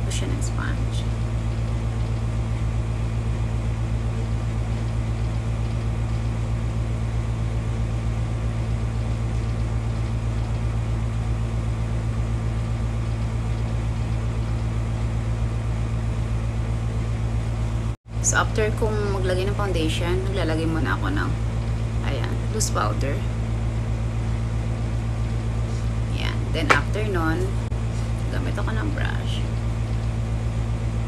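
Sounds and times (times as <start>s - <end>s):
low mechanical hum: 0.0s - 31.0s.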